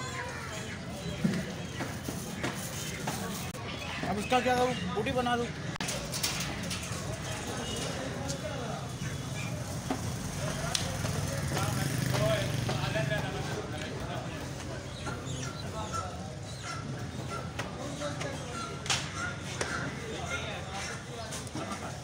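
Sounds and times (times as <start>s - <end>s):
faint chatter of voices: 0.0s - 22.0s.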